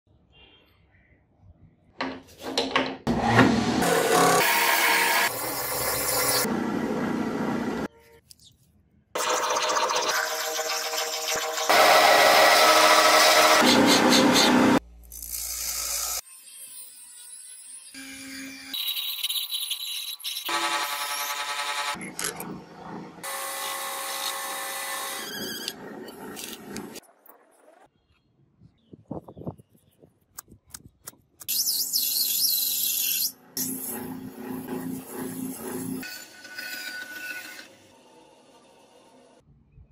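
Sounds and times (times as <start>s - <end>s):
bench grinder grinding steel: 9.2s - 14.8s, 32.9s - 39.4s
metal lathe turning: 33.2s - 37.9s.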